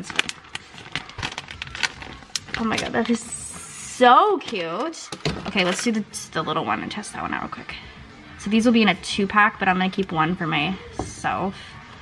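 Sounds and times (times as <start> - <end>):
plastic bag crinkling: 0.0 - 3.4.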